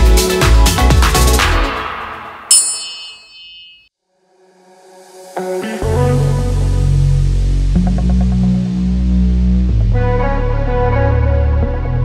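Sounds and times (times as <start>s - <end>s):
electronic workout music: 0.0s - 2.3s
bright bell-like ding: 2.5s - 3.9s.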